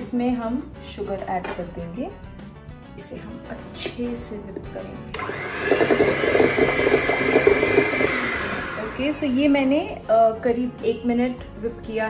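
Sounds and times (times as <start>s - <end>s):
electric hand mixer whining: 5.1s - 9.5s.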